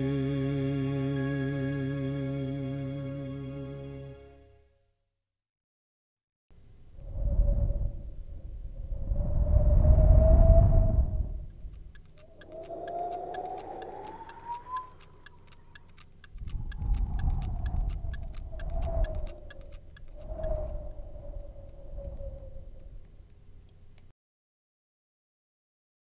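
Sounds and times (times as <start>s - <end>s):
low rumble: 6.7s - 23.3s
fast steady ticking: 11.5s - 21.1s
thin wavering whistling tone: 12.2s - 15.8s, 18.0s - 22.8s.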